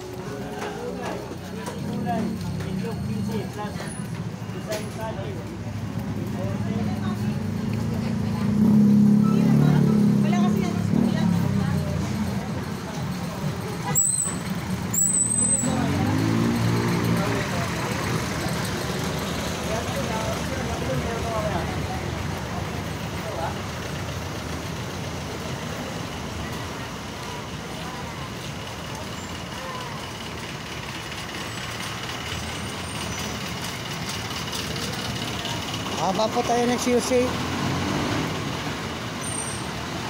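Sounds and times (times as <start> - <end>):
vehicle engines running: 0.0 - 40.0
brief high squeals: 14.0 - 15.7.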